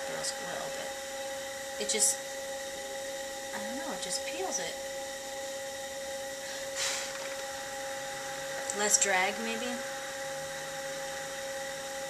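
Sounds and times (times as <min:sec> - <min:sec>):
potter's wheel motor whine: 0:00.0 - 0:12.0.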